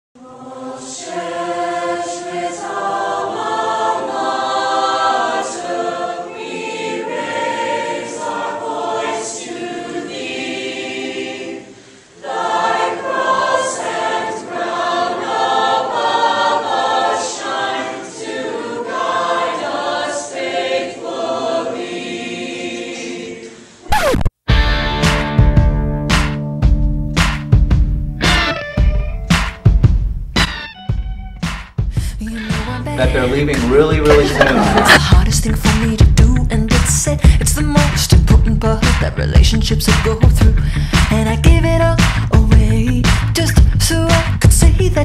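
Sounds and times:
choir singing held chords: 0.2s - 23.9s, 32.6s - 35.4s.

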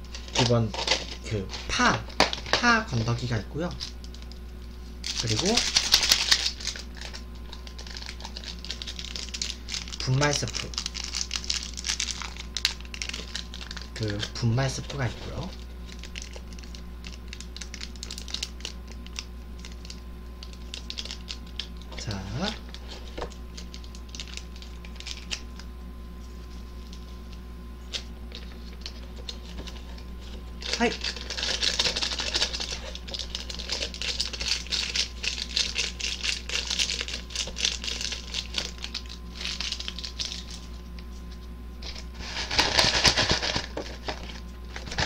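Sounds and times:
steady low hum: 0.0s - 45.0s
foil sachet crinkling: 0.1s - 25.6s, 27.8s - 45.0s
plastic packaging crackling: 0.1s - 25.6s, 27.9s - 41.1s, 41.8s - 45.0s.

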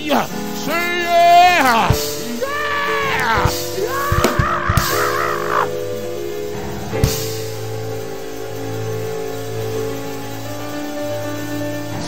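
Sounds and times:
person preaching: 0.0s - 5.7s
keyboard holding long chords: 0.0s - 12.0s.

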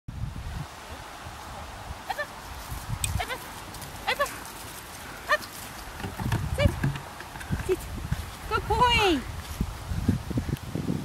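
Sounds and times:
low thumps: 5.9s - 8.3s.

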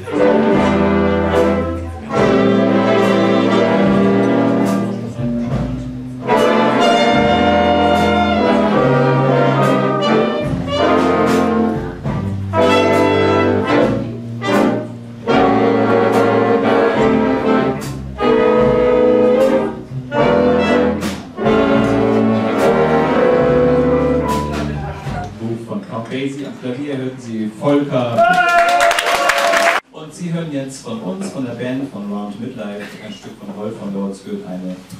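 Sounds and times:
brass and saxophone chords: 0.0s - 25.6s
jazz big band playing: 0.0s - 25.8s.

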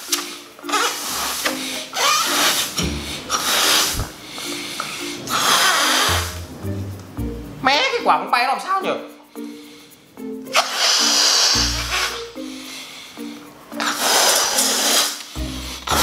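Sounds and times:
breath blowing up balloon: 0.0s - 6.5s, 10.5s - 16.0s
background music: 0.0s - 16.0s.

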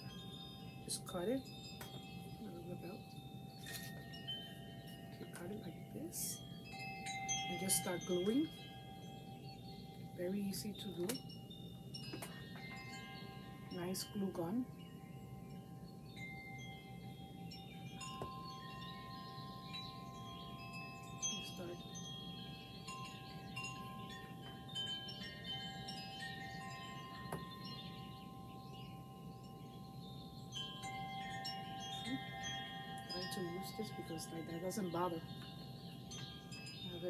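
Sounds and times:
soft ringing chimes: 0.0s - 37.0s.

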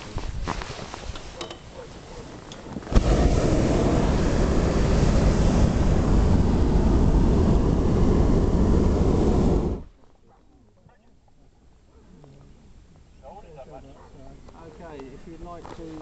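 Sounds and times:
propane burner blast: 2.4s - 9.9s.

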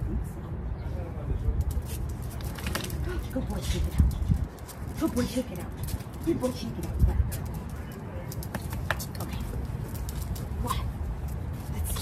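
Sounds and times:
steady low rumble: 0.0s - 12.0s
dog claws clicking on concrete: 1.6s - 12.0s.

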